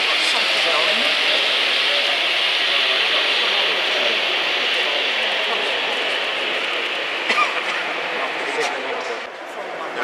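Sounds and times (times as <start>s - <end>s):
model train whirring on track: 0.0s - 10.0s.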